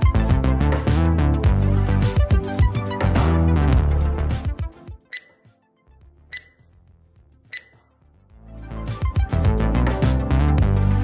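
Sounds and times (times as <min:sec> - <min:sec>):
beat-driven background music: 0:00.0 - 0:11.0
short electronic beeps: 0:05.1 - 0:05.4, 0:06.3 - 0:06.6, 0:07.5 - 0:07.9.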